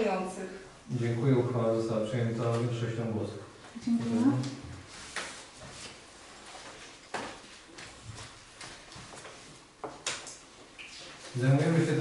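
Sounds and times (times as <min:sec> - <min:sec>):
faint paper rustle: 0:04.1 - 0:12.0.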